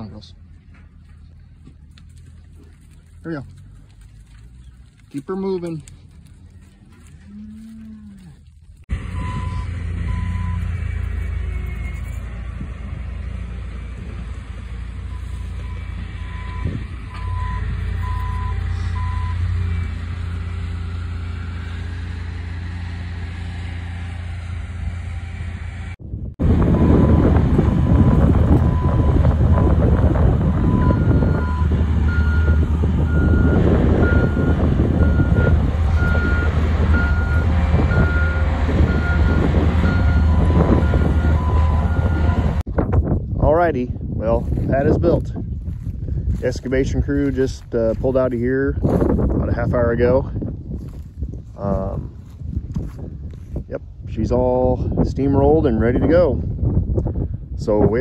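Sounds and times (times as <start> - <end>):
loader engine running: 0.0 - 42.7, 44.3 - 53.6
reversing alarm beeping: 9.0 - 12.4, 15.1 - 22.2, 26.7 - 29.2, 30.6 - 42.6.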